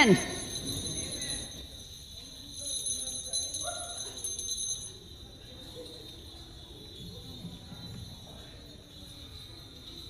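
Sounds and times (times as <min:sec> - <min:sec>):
hand bells jingling: 0:00.0 - 0:10.0.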